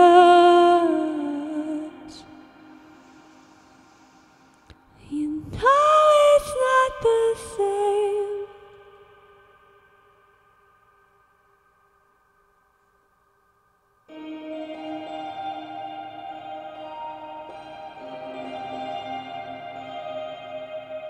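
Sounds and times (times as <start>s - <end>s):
woman singing slow song: 0.0s - 4.0s, 4.9s - 9.8s.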